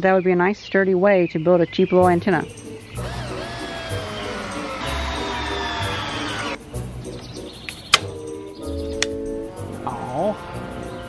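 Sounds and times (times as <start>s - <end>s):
cordless drill driving screw: 3.0s - 6.6s
sharp snap: 7.7s - 8.2s.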